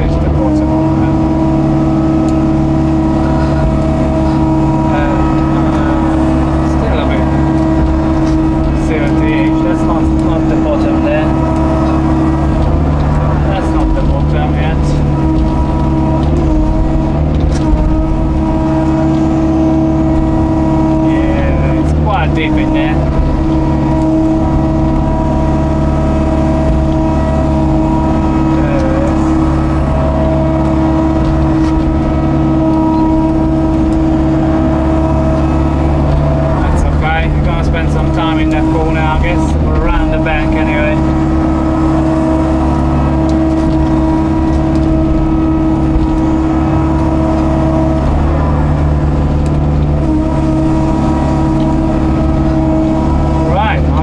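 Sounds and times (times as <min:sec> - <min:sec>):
excavator diesel engine running: 0:00.0 - 0:54.0
bucket and arm clunks: 0:02.0 - 0:54.0.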